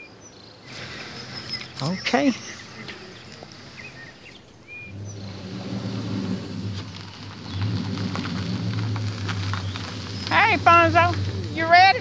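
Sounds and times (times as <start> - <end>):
faint bird chirps: 0.0 - 5.4
car engine humming: 0.0 - 12.0.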